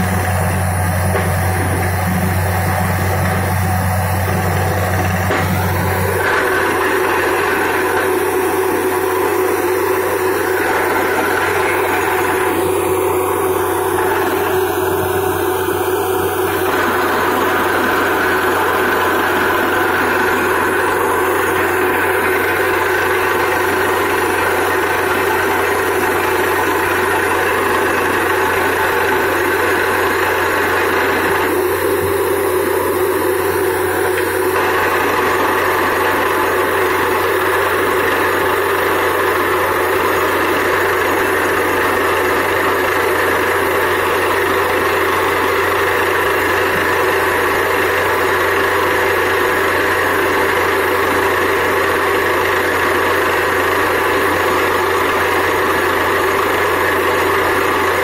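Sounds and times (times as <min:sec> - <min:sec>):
deep hum: 0:00.0 - 0:26.8
drilling rig running: 0:00.0 - 0:58.0.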